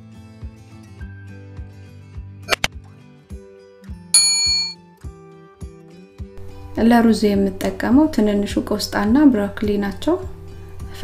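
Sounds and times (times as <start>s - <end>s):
notification bell ding: 4.2s - 4.8s.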